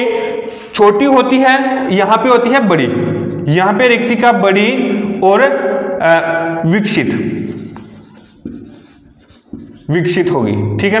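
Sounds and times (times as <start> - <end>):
marker scratching on whiteboard: 2.4 - 5.3, 6.9 - 10.3.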